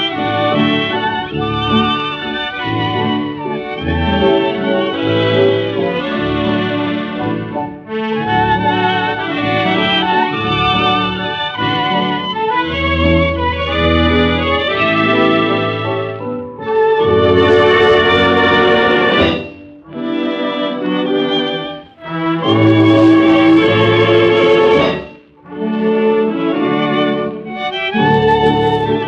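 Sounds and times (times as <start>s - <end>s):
dance orchestra playing a song medley: 22.0s - 25.4s.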